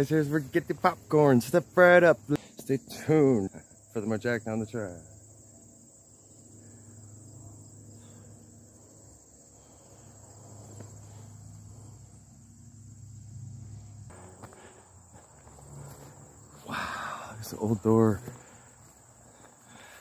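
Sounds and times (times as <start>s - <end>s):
field insects chirping: 0.0s - 20.0s.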